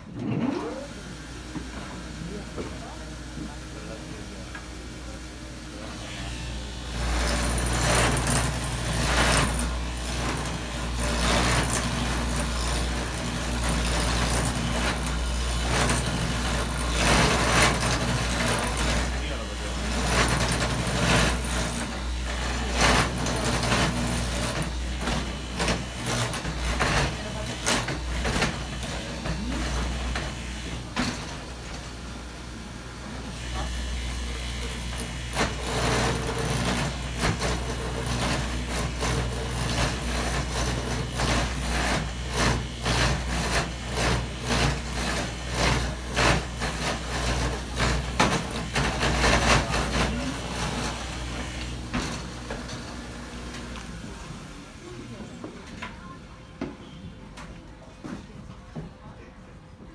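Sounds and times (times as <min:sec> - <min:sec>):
machine motor hum: 0:00.0 - 0:55.2
cutter clattering through wood: 0:06.9 - 0:32.2, 0:33.3 - 0:54.0.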